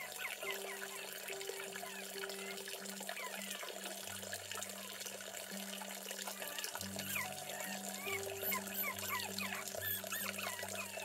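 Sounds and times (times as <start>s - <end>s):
water trickling into a pond: 0.0s - 11.0s.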